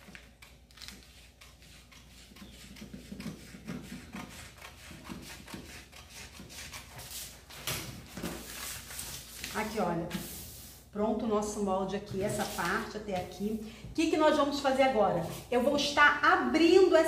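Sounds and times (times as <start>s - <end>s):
scissors snipping paper: 0.0s - 7.6s
paper rustling: 6.7s - 10.7s, 12.2s - 13.3s.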